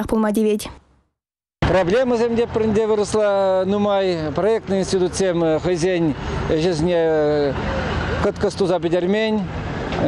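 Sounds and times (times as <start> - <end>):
passing cars: 1.6 - 10.0.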